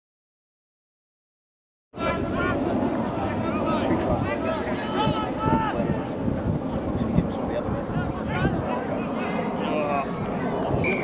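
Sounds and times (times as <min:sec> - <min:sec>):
players and spectators shouting: 0:02.0 - 0:06.2
wind rumbling on microphone: 0:02.0 - 0:11.0.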